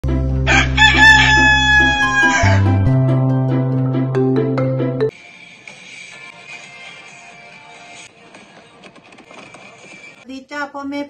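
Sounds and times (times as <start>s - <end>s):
rooster crowing: 0.5s - 2.9s.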